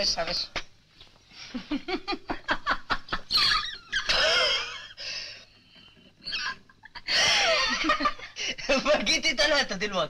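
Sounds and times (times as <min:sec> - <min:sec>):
woman laughing: 0:01.6 - 0:05.0.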